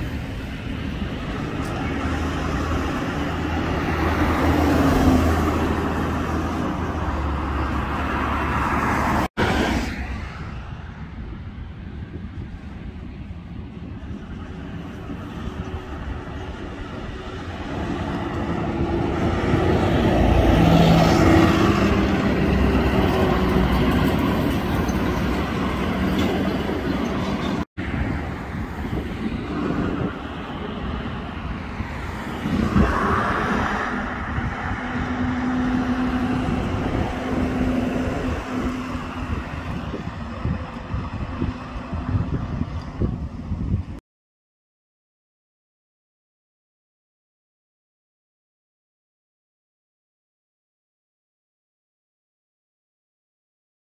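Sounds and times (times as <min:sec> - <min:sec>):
buses driving past: 0:00.0 - 0:44.0.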